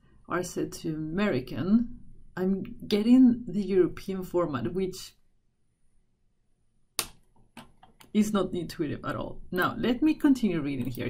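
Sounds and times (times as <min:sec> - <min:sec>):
sharp click: 0:07.0 - 0:08.1.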